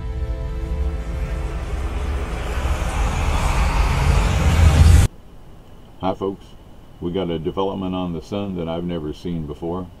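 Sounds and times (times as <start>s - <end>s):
rumbling whoosh: 0.0s - 5.1s.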